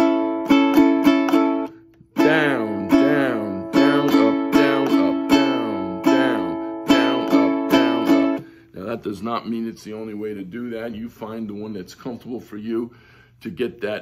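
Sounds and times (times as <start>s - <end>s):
ukulele strumming: 0.0s - 8.6s.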